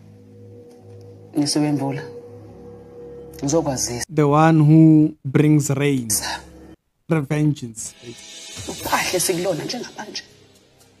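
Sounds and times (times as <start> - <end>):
background music: 0.0 - 11.0
high hiss: 7.9 - 11.0.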